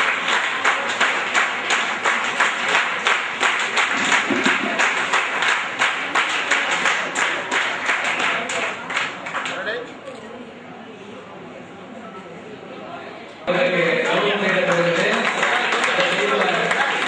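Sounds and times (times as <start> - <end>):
audience applauding: 0.0 - 9.6, 13.5 - 17.0.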